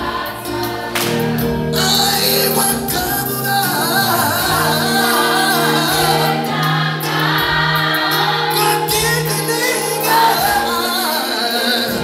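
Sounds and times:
women's choir singing gospel: 0:00.0 - 0:12.0.

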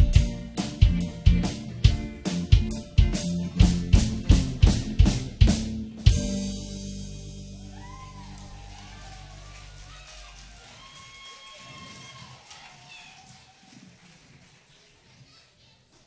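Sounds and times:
rock band chord ringing: 0:00.0 - 0:08.8
audience cheering and shouting: 0:07.6 - 0:14.0.

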